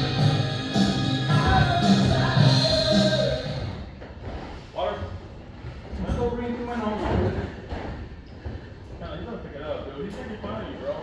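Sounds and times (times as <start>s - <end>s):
background music: 0.0s - 4.0s.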